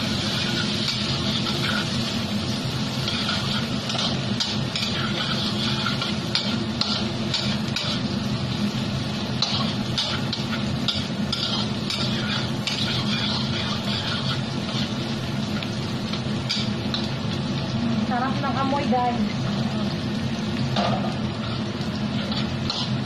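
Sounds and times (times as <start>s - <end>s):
metal spatula scraping wok: 0.0s - 8.4s, 9.4s - 17.1s, 21.4s - 23.0s
oil sizzling: 0.0s - 23.0s
steady low hum: 0.0s - 23.0s.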